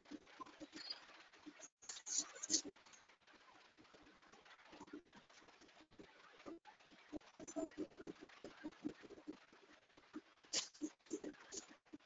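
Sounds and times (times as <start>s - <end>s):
online meeting audio feed: 0.0s - 12.0s.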